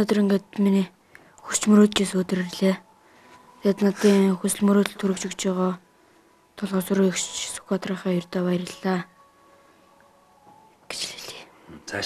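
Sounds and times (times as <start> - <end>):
person whispering: 3.6 - 4.7, 10.9 - 12.0
person speaking: 3.6 - 5.7.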